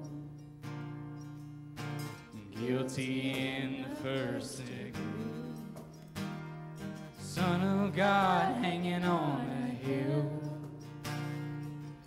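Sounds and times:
voices singing worship song: 0:00.0 - 0:00.6, 0:02.3 - 0:06.3, 0:07.2 - 0:11.3
acoustic guitar strumming: 0:00.0 - 0:12.0.

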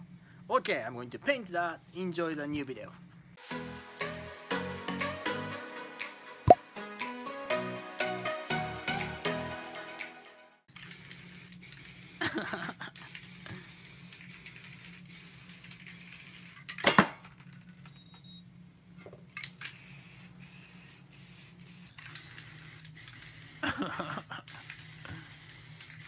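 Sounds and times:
spray paint can hissing: 0:10.7 - 0:16.7, 0:19.5 - 0:26.0.

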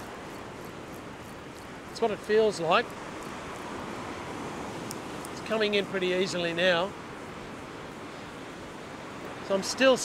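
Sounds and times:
surf washing up beach: 0:00.0 - 0:10.0
wind: 0:00.0 - 0:10.0.

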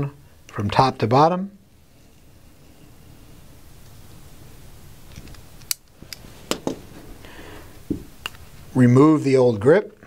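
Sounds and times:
sharp clicks and knocks: 0:05.1 - 0:06.8.

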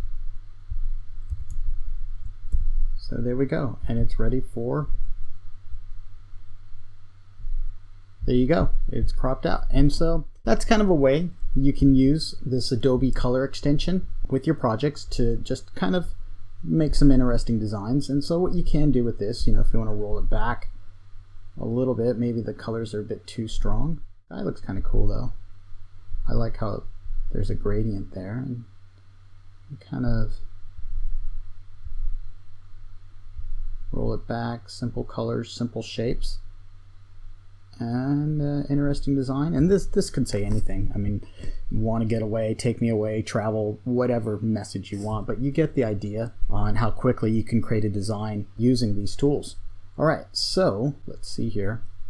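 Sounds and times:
low hum with faint hiss: 0:00.0 - 0:52.0.

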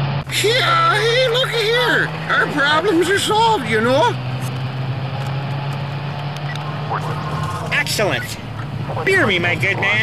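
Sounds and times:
car engine low hum: 0:00.0 - 0:10.0.

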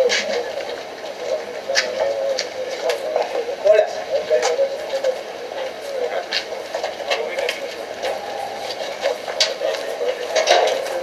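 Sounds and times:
people talking indistinctly: 0:00.0 - 0:11.0.

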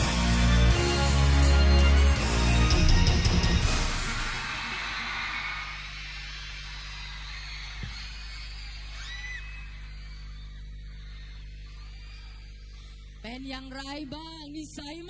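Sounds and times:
electrical hum: 0:05.8 - 0:15.0
faint high calls: 0:07.4 - 0:13.2.

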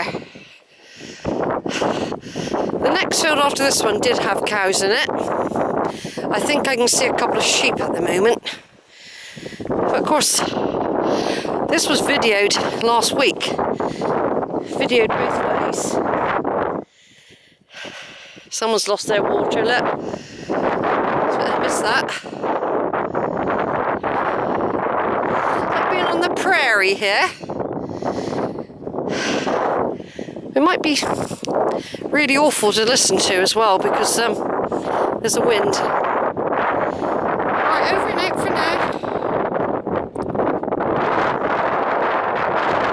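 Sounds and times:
wind blowing across microphone: 0:00.0 - 0:42.9.

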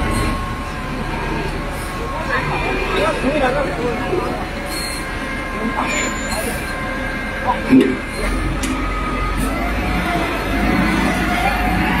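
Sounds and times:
diesel machinery running: 0:00.0 - 0:12.0.

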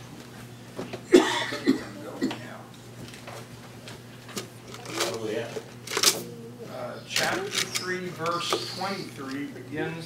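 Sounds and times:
person coughing: 0:01.1 - 0:02.5.

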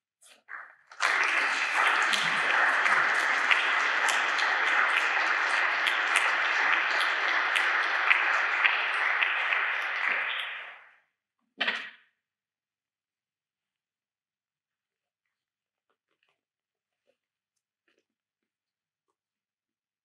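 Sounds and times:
audience applauding: 0:00.9 - 0:11.0.

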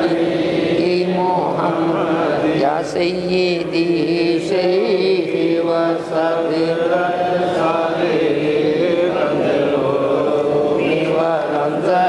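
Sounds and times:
man chanting devotional song: 0:00.0 - 0:12.0.

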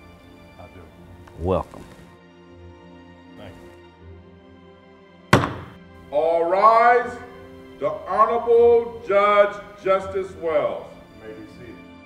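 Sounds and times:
background music: 0:00.0 - 0:12.0
gavel strike: 0:05.3 - 0:05.9.

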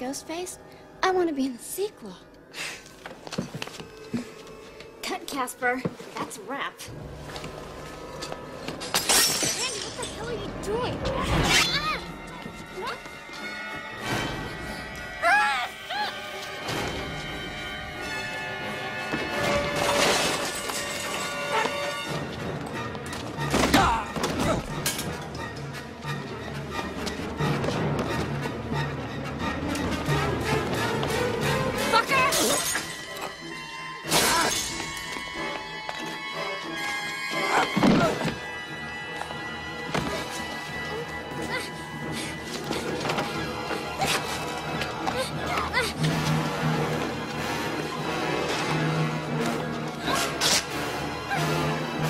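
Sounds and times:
tense orchestral film score: 0:00.0 - 0:52.0
glass bottle smashing: 0:08.8 - 0:10.2, 0:19.8 - 0:21.3.

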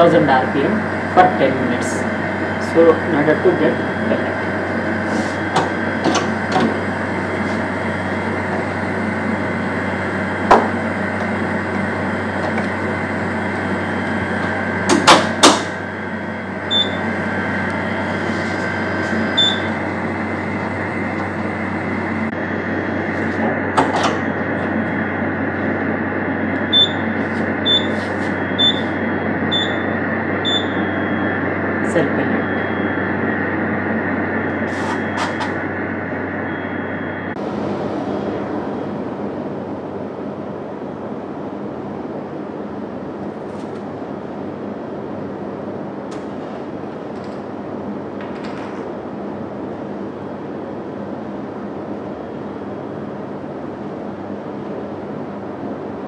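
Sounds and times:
centrifuge humming: 0:00.0 - 0:39.4
short high key beeps: 0:16.7 - 0:17.1, 0:19.4 - 0:19.8, 0:26.7 - 0:27.0, 0:27.6 - 0:28.9, 0:29.5 - 0:31.2.

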